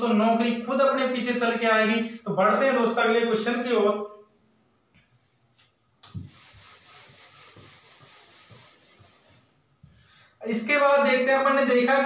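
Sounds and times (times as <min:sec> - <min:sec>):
whiteboard being wiped: 0:06.0 - 0:09.7.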